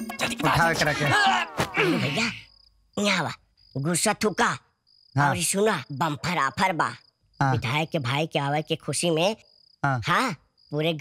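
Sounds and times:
cricket trilling: 0:00.1 - 0:11.0.

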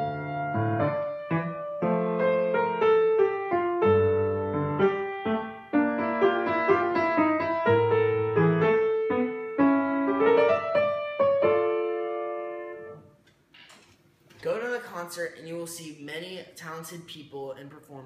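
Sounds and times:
solo piano: 0:00.0 - 0:13.2.

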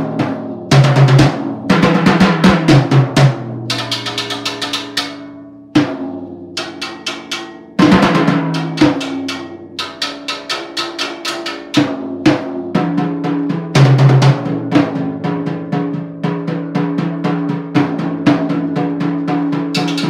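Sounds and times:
drums played with sticks: 0:00.0 - 0:20.0.

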